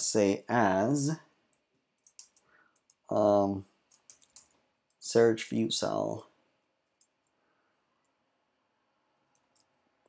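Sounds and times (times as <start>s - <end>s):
computer keyboard clicks: 1.5s - 3.1s, 3.9s - 5.0s, 7.0s - 7.4s, 9.3s - 9.7s.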